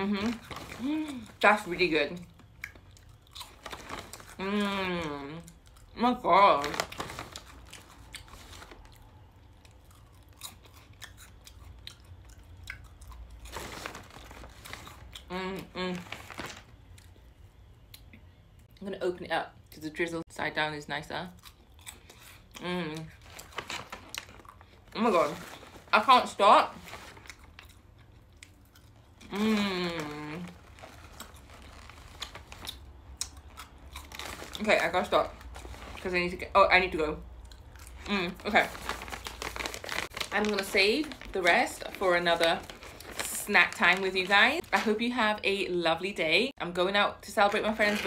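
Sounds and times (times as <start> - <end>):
chewing crunchy rice cake: 2.2 - 6.0, 6.6 - 17.2, 21.3 - 25.9, 26.8 - 36.1, 37.3 - 40.5
person humming: 29.3 - 30.5.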